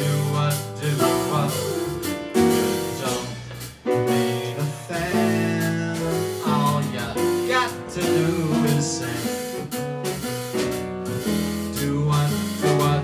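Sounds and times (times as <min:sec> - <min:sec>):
man singing: 0:00.0 - 0:09.8, 0:11.1 - 0:13.0
drums: 0:00.0 - 0:13.0
piano chords: 0:00.0 - 0:13.0
walking upright bass: 0:00.0 - 0:13.0.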